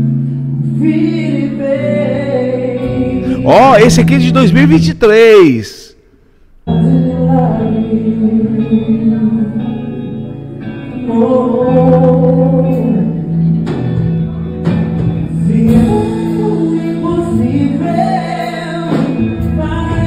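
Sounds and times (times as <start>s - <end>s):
man singing gospel: 1.0s - 6.0s
band accompaniment: 3.2s - 5.8s, 12.7s - 20.0s.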